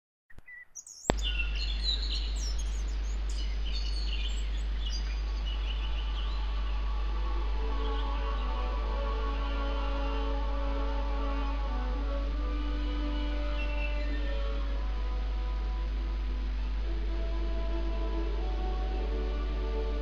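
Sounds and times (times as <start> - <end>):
birdsong chirping: 0.3 - 9.0, 13.0 - 14.9
steady low hum: 1.1 - 20.0
sustained orchestral notes: 4.5 - 20.0.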